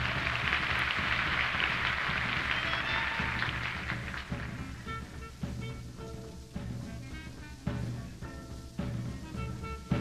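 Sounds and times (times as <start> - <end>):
audience applause: 0.0 - 4.8
low recording hum: 0.0 - 10.0.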